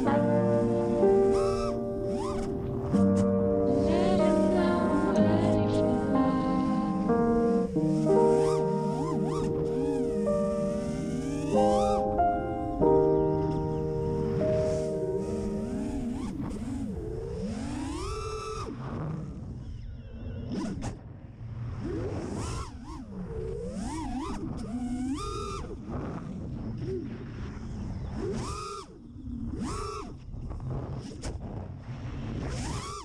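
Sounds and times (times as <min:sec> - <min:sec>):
quadcopter motors whining: 0:00.0 - 0:03.3, 0:05.0 - 0:18.8, 0:21.8 - 0:25.8, 0:27.7 - 0:30.2, 0:32.5 - 0:33.0.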